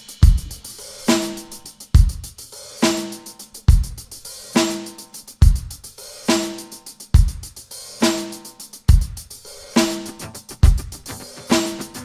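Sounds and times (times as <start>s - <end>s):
hi-hat ticking: 0.0s - 12.0s
snare drum: 0.0s - 12.0s
bass drum: 0.2s - 0.6s, 10.1s - 12.0s.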